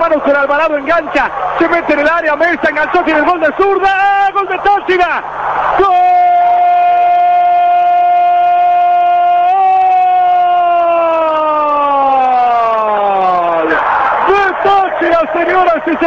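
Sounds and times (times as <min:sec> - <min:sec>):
man shouting long drawn-out cry: 0:05.8 - 0:15.0.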